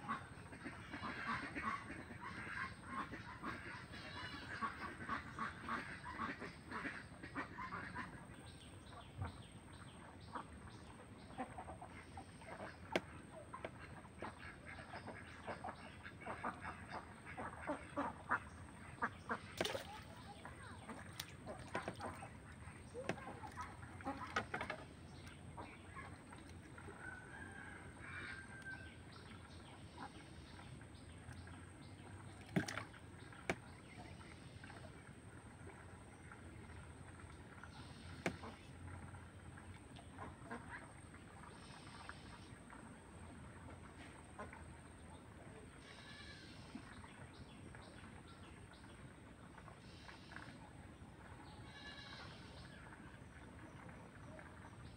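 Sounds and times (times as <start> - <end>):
ducks quacking: 0.0 - 9.5, 10.1 - 34.9, 37.5 - 39.1, 40.0 - 42.5, 45.8 - 47.0, 51.4 - 54.5
fish splashing in water: 19.3 - 27.8, 32.2 - 33.8
faint short animal calls: 45.8 - 46.6, 51.6 - 52.6.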